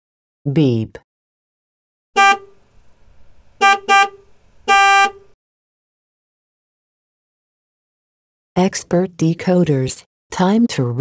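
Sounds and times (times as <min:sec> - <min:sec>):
vehicle horn honking: 0:02.2 - 0:02.6, 0:03.6 - 0:05.4.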